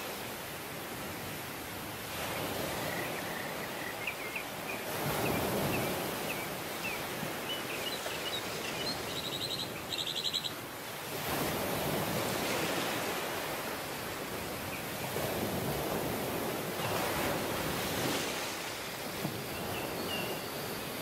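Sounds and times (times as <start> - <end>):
ocean surf breaking: 0.0 - 20.0
small birds chirping: 2.7 - 10.6.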